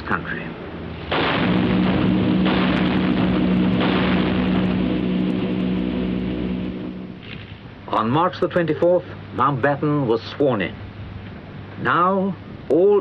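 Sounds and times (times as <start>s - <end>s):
steady hum of held tones: 0.4s - 13.0s
field guns firing: 1.1s - 7.3s.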